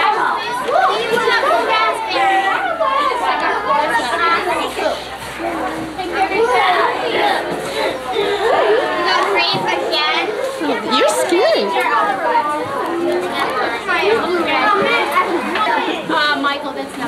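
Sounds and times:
children chattering: 0.0s - 17.0s.

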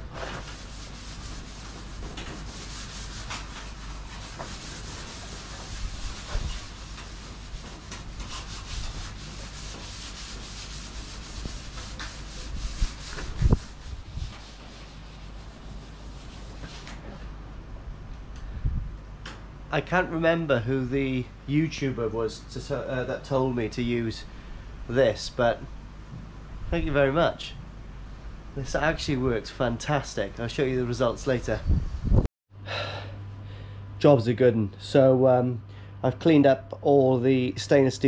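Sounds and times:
scouring pad scrubbing steel: 0.0s - 16.8s.

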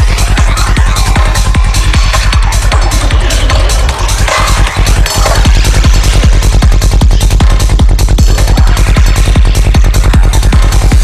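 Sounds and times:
fast kick drum: 0.0s - 11.0s
rolling bassline: 0.0s - 11.0s
swirling synth effects: 0.0s - 11.0s.

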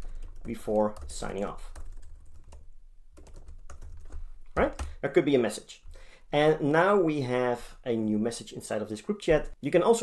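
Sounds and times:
typing on computer keyboard: 0.1s - 2.6s, 3.2s - 4.9s.

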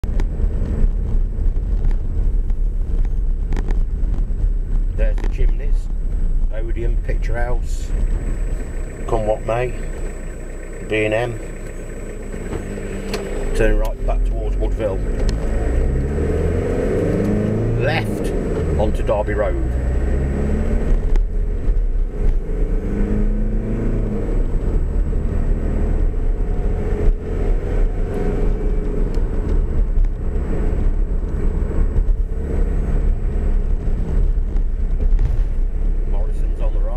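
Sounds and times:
engine and road rumble: 0.0s - 36.9s.

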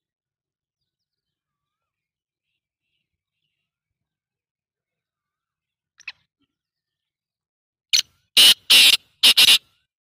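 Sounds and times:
bird calling with harsh grating notes: 7.9s - 10.0s.

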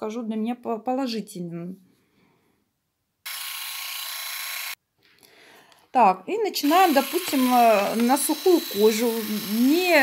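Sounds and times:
electric manicure tool whirring: 3.2s - 4.8s, 6.6s - 10.0s.

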